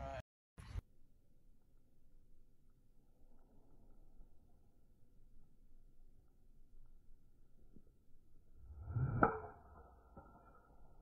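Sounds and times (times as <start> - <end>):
golf club whoosh: 8.6 - 9.9
golf club striking ball: 9.0 - 10.4.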